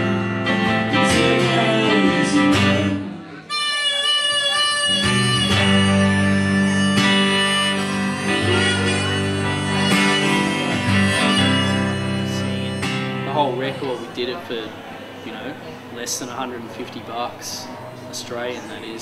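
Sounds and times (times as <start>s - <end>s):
harmonica long held notes: 0.0s - 16.0s
strummed guitars: 0.0s - 19.0s
man speaking: 13.2s - 19.0s.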